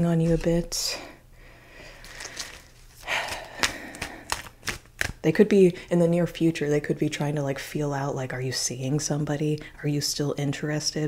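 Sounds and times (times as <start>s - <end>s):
cards being shuffled: 2.0s - 5.2s.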